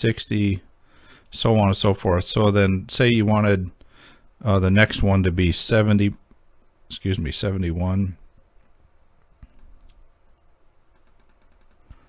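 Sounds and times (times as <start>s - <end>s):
computer mouse clicking: 9.4s - 12.0s.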